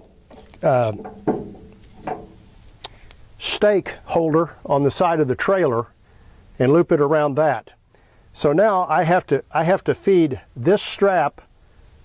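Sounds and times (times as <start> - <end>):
handling noises: 0.0 - 3.2.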